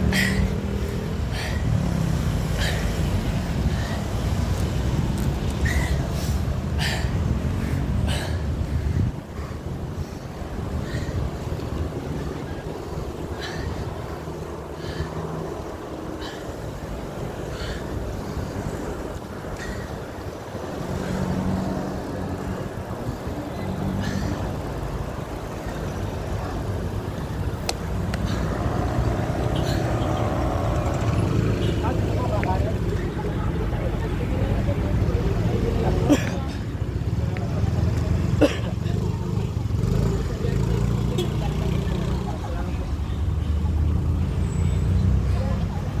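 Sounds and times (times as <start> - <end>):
road traffic noise: 0.0 - 46.0.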